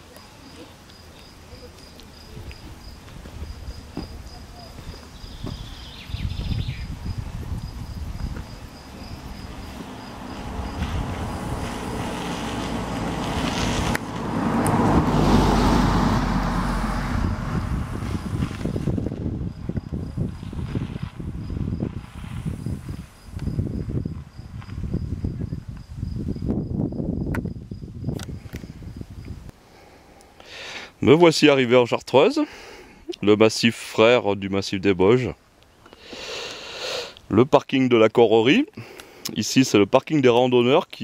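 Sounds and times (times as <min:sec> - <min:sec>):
insects chirping: 0:00.0 - 0:30.9
car driving past: 0:08.7 - 0:18.6.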